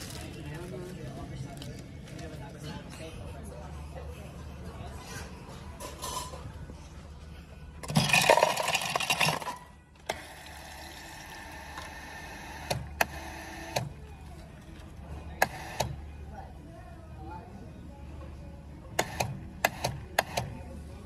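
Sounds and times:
drink pouring into paper cup: 7.8 - 9.6.

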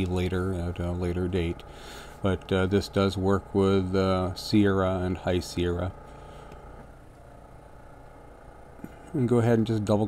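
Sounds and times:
faint low hum and hiss: 0.0 - 10.0.

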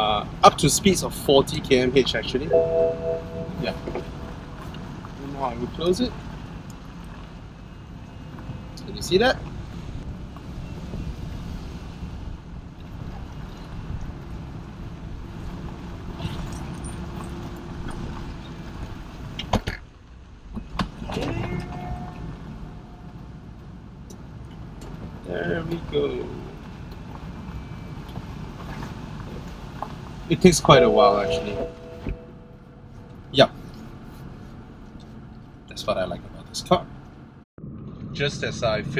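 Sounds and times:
car engine low rumble: 0.0 - 38.9.

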